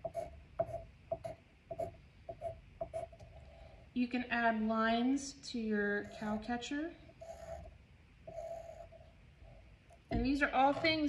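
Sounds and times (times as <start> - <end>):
pencil scratching on paper: 6.0 - 6.5, 7.2 - 9.2.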